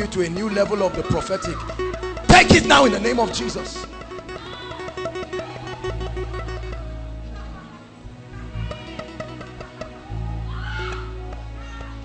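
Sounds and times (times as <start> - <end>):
bass: 0.0 - 12.0
high wavering cry: 1.0 - 6.8.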